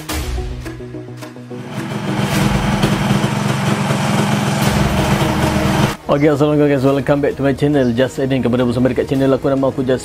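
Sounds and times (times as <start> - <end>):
background music: 0.0 - 10.0
motorcycle engine running: 1.6 - 6.0.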